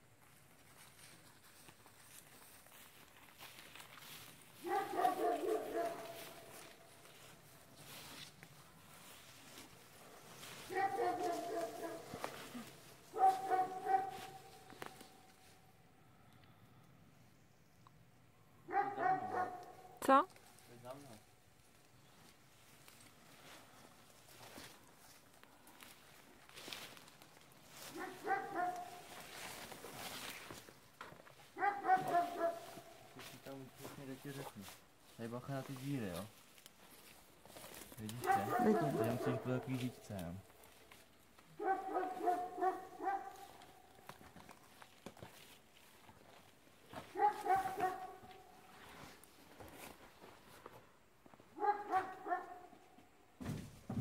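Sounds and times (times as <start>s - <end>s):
dog barking: 4.6s - 6.6s, 10.6s - 14.7s, 18.7s - 20.0s, 27.9s - 29.2s, 31.6s - 33.2s, 38.2s - 39.8s, 41.6s - 43.9s, 47.1s - 48.5s, 51.6s - 52.8s.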